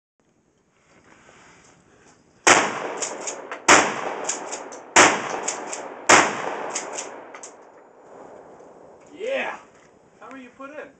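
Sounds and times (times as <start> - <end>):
shotgun blasts with echoes: 2.4 - 9.0.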